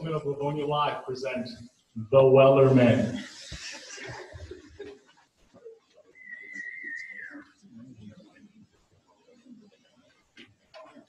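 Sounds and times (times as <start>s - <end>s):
person whistling high note: 6.2s - 7.5s.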